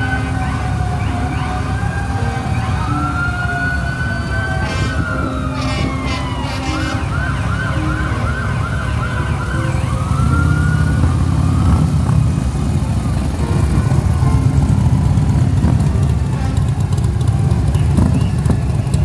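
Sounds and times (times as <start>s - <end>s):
siren wailing: 0.0s - 13.0s
heavy vehicle engine rumble: 0.0s - 19.0s.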